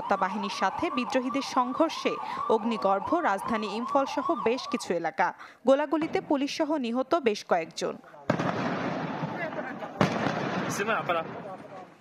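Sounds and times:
fire crackling rush: 8.2s - 12.0s
sharp crack: 8.3s - 11.9s.

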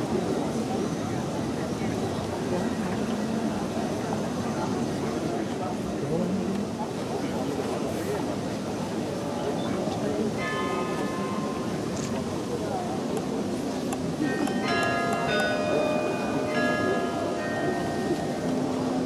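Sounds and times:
carillon bells ringing: 14.2s - 19.0s.

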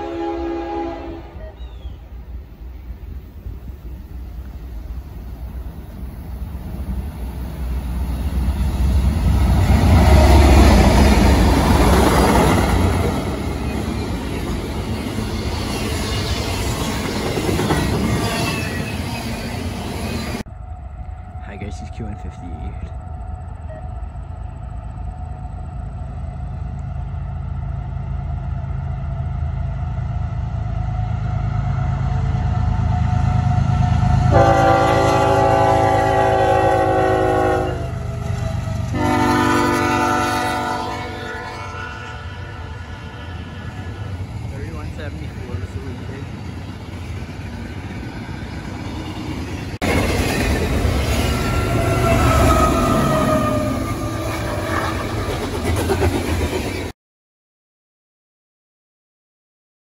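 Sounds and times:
locomotive air horn blasts: 0.0s - 1.6s, 33.0s - 38.0s, 38.9s - 43.1s
freight train rumbling past: 0.0s - 56.9s.

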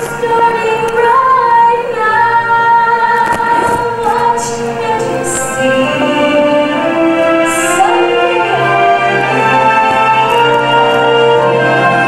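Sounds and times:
musical backing: 0.0s - 12.0s.

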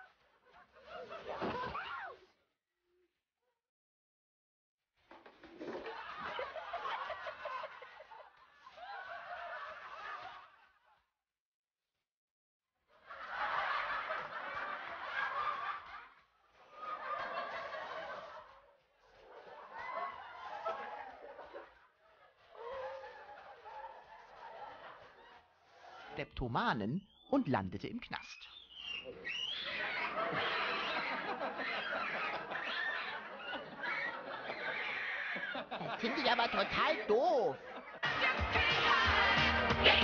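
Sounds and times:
people laughing: 0.0s - 1.8s, 5.6s - 11.1s, 13.0s - 26.2s, 28.8s - 40.0s.

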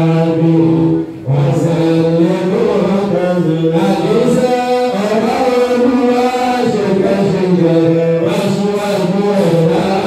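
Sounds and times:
man chanting prayer into microphone: 0.0s - 10.0s.

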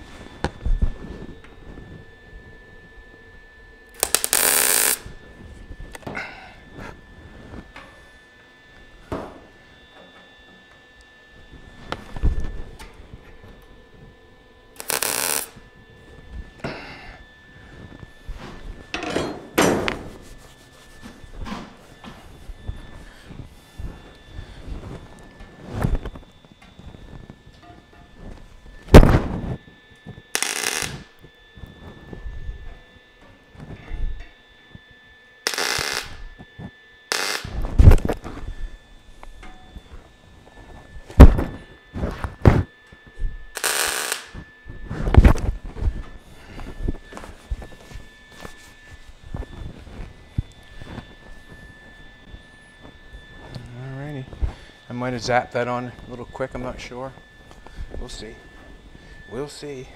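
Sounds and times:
welder crackling bursts: 3.9s - 5.1s, 14.8s - 15.6s, 30.3s - 31.2s, 35.4s - 36.3s, 37.1s - 38.1s, 43.5s - 44.4s.

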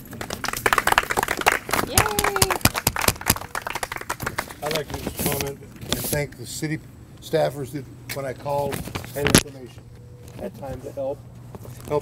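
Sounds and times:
small group applauding: 0.0s - 4.9s
person calling out yay: 1.9s - 2.6s.

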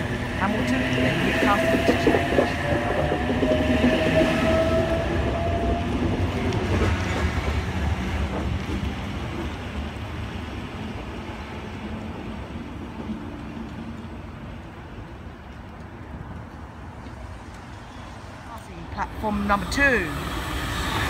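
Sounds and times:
train wheels rumbling on track: 0.0s - 21.0s.

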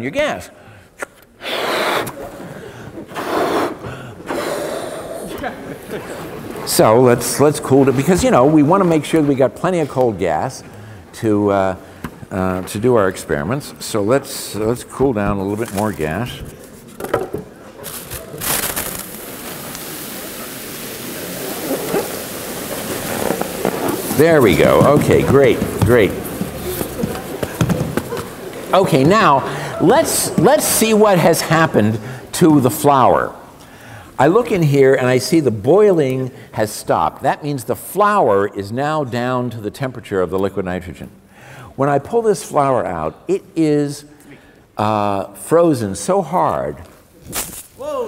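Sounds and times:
man blowing up balloon: 1.4s - 5.4s
liquid nitrogen boiling hiss: 1.4s - 11.8s, 17.7s - 38.2s.

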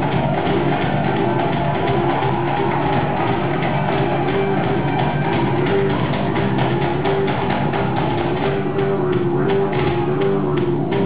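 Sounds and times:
drum kit beat: 0.0s - 11.0s
rock band playing: 0.0s - 11.0s.

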